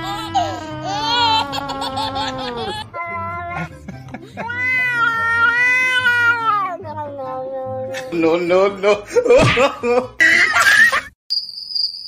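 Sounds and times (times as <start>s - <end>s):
cat yowling: 4.4s - 7.8s.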